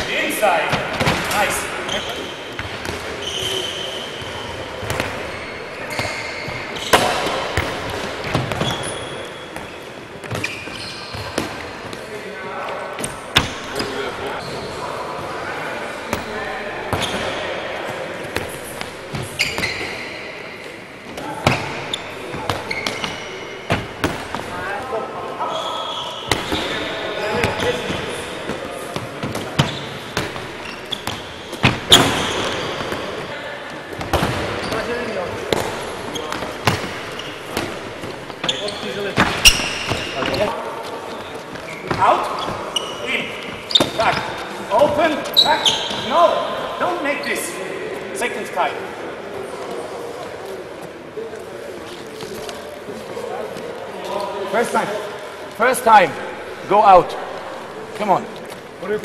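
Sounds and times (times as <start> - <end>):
shoes squeaking on floor: 0.0 - 12.0, 13.0 - 15.0, 18.3 - 46.4
balls bouncing on wooden floor: 4.8 - 9.0, 21.2 - 24.6, 26.3 - 33.3, 33.9 - 40.6.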